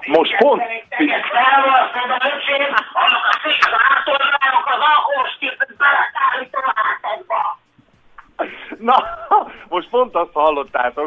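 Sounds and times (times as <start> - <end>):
man talking into microphone: 8.8 - 11.0.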